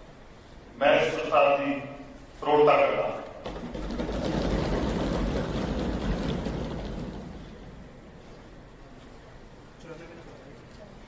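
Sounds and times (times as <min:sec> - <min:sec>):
crowd noise in a hall: 0:00.0 - 0:11.0.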